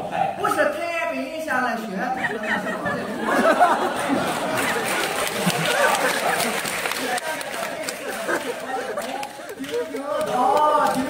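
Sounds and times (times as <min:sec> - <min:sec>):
performers talking into microphones: 0:00.0 - 0:11.0.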